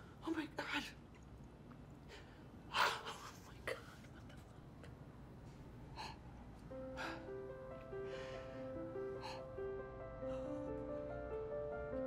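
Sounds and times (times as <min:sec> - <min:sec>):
woman breathing softly: 0:05.8 - 0:11.0.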